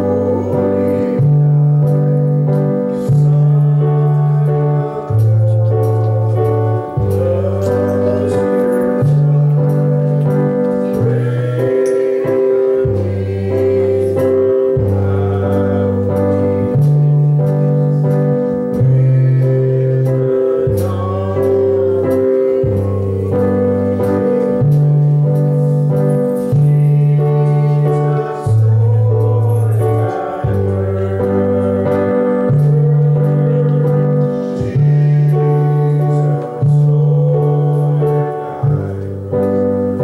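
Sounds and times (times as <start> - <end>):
bass line: 0.0 - 40.0
keyboard playing held chords: 0.0 - 40.0
voices singing faintly: 0.0 - 40.0.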